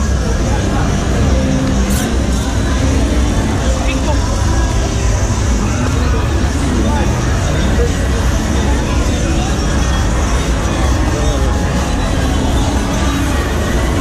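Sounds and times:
bar music: 0.0s - 14.0s
crowd chatter: 0.0s - 14.0s.

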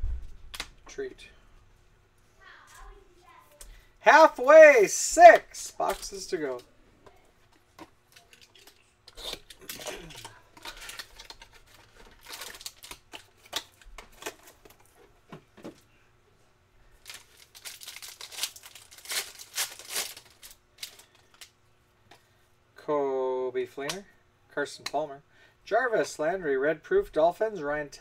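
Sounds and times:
foil wrapper crinkling and tearing: 8.1s - 14.6s, 17.0s - 21.5s.

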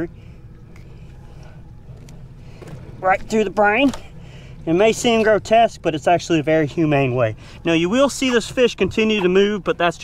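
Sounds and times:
boat low hum: 0.0s - 10.0s.

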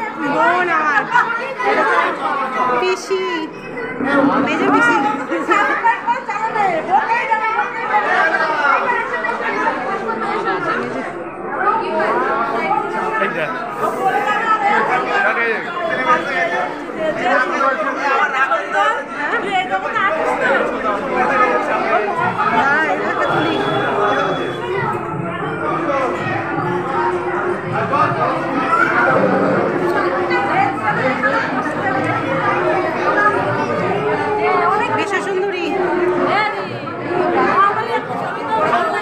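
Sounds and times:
crowd chatter: 0.0s - 39.0s.

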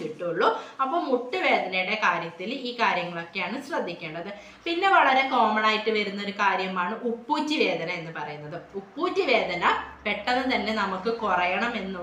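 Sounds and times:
woman speaking: 0.0s - 12.0s.

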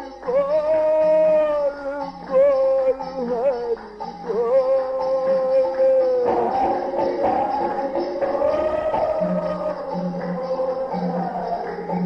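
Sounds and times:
music: 0.0s - 12.0s
person singing devotional chant: 0.2s - 12.0s.

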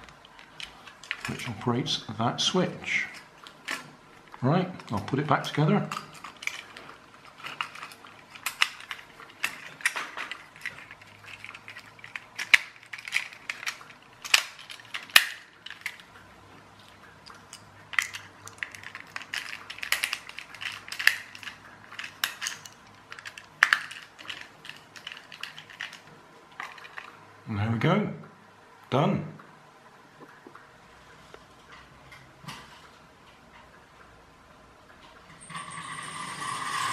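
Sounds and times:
plastic parts clicking and clattering: 0.0s - 27.2s.

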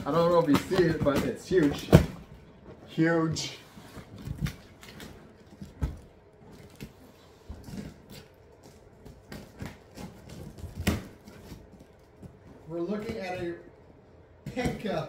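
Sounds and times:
box knocks and thumps: 0.0s - 2.4s.

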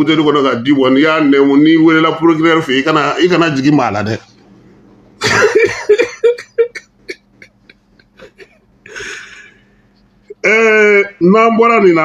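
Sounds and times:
man coughing: 5.2s - 9.2s
man talking: 10.3s - 12.0s.

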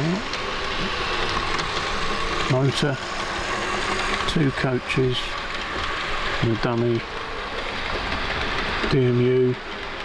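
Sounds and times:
model train whirring on track: 0.0s - 10.0s.

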